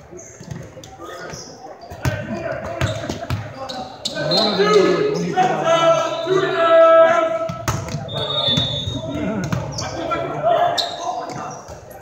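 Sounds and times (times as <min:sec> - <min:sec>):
players shouting in gym: 0:03.5 - 0:11.6
volleyball hitting gym floor: 0:07.5 - 0:08.7.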